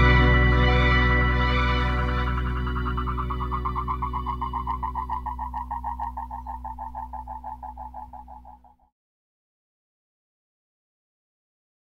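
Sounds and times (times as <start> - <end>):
low drone: 0.0 - 8.8
pulsing high tone: 1.0 - 8.8.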